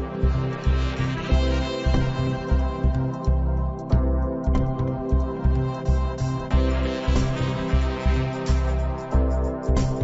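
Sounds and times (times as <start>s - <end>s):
instrumental music with bass beat: 0.0s - 10.0s.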